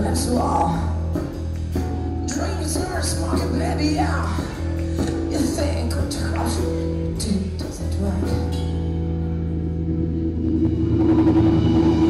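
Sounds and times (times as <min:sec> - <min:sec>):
electric guitar and bass chord: 0:08.0 - 0:12.0.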